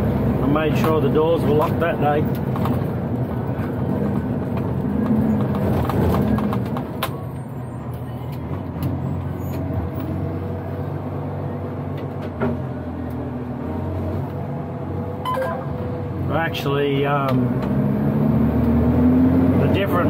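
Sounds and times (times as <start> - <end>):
diesel truck engine running: 0.0 - 20.0.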